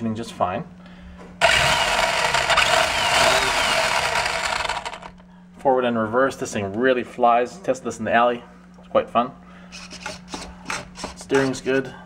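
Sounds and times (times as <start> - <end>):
electric toy truck motor whirring: 1.4 - 5.2.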